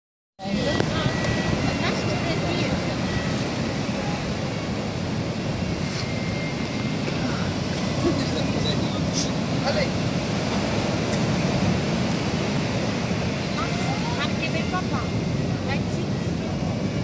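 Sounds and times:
ocean surf breaking: 0:00.4 - 0:17.0.

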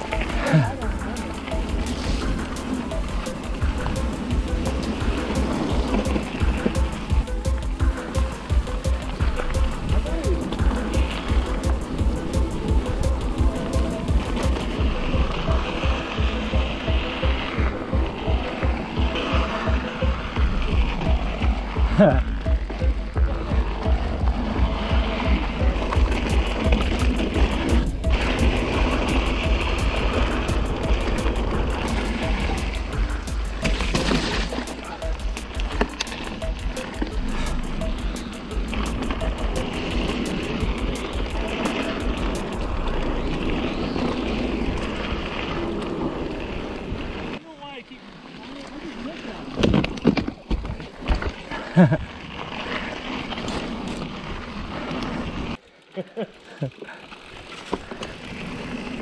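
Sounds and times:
bike rattling over rough trail: 0:00.0 - 0:59.0.

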